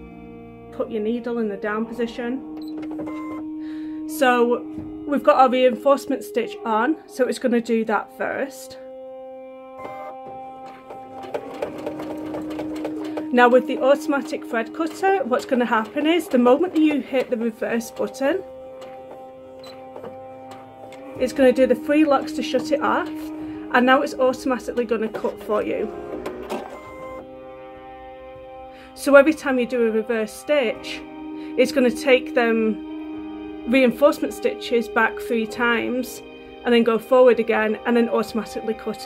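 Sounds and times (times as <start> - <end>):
background music chord: 0.0 - 39.0
sewing machine stitching: 9.8 - 27.2.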